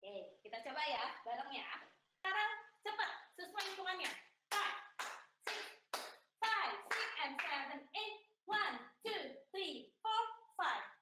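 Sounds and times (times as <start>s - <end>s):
woman calling out dance steps: 0.0s - 5.0s, 6.4s - 11.0s.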